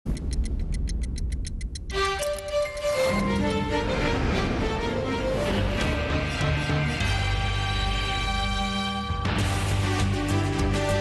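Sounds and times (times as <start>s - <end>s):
clock ticking fast: 0.1s - 3.3s
low rumbling drone: 2.6s - 9.0s.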